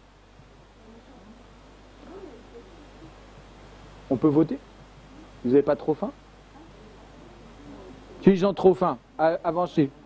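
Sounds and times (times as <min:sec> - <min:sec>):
steady background hiss: 0:00.0 - 0:10.0
distant murmuring voices: 0:06.4 - 0:08.3.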